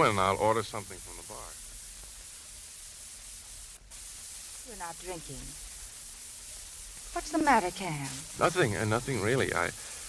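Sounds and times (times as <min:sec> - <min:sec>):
old radio hiss and hum: 0:00.0 - 0:10.0
voice speaking: 0:07.2 - 0:09.7.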